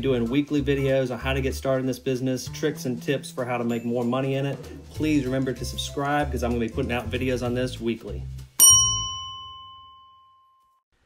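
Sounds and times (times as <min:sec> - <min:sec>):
bell-like ding: 0:08.6 - 0:10.8.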